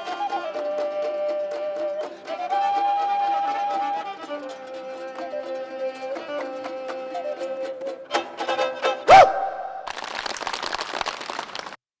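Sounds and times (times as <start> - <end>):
audience applauding: 9.8 - 11.9.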